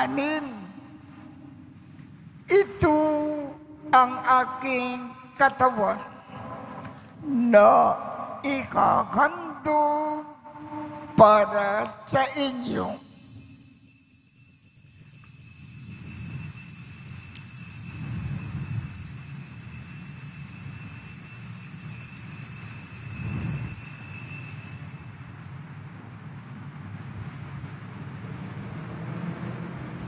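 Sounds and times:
altar bells ringing: 12.6s - 25.4s.

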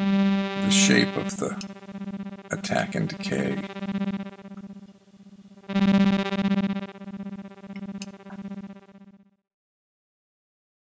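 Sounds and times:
synth repeated note: 0.0s - 4.8s, 5.6s - 9.0s.

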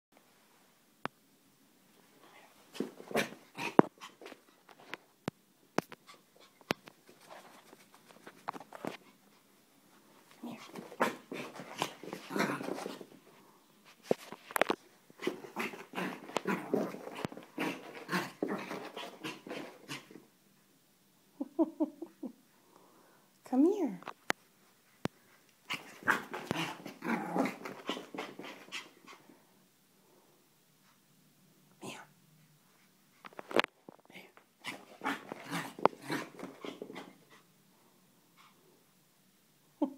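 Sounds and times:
dog huffing and scuffling: 10.2s - 13.2s, 13.9s - 20.2s, 25.7s - 29.2s, 34.6s - 37.4s.

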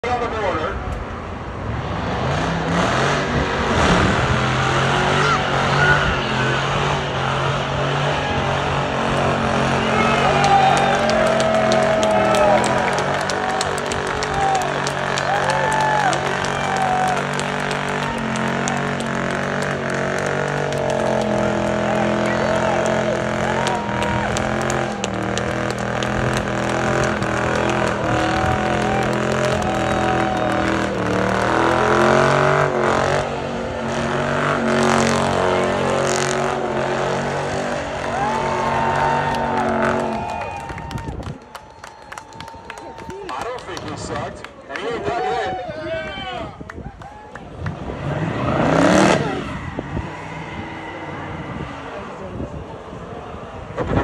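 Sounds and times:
car engine revving: 1.0s - 40.6s, 47.5s - 54.0s
tires squealing on pavement: 1.8s - 54.0s.

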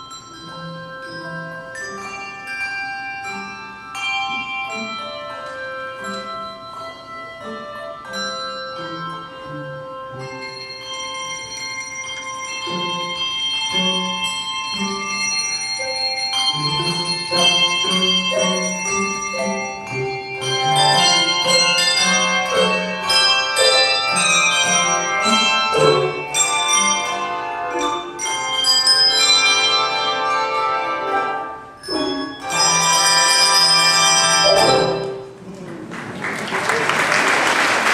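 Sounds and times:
handbell choir playing: 0.0s - 35.4s
low bass bells: 0.0s - 35.4s.

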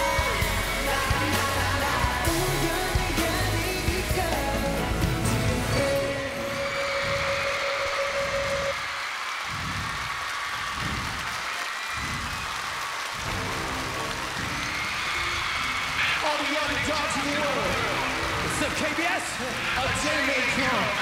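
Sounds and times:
crowd cheering and screaming: 5.9s - 21.0s
held synth note: 6.1s - 8.8s.

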